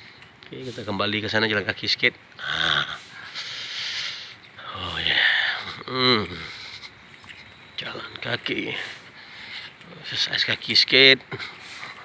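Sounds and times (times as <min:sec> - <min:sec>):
person breathing out heavily: 0:02.4 - 0:05.7.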